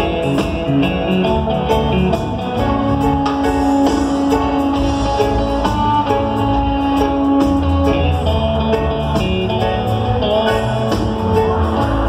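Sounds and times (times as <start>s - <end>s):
electric guitar lead: 0.0s - 12.0s
reggae band playing: 0.0s - 12.0s.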